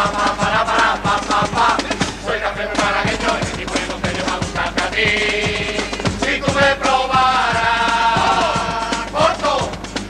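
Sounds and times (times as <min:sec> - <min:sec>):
men singing in chorus: 0:00.0 - 0:09.8
steady percussion beat: 0:00.0 - 0:10.0.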